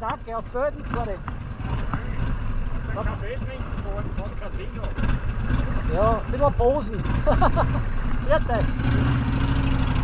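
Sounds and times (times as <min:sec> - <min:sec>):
motorcycle engine idling: 0:00.0 - 0:10.0.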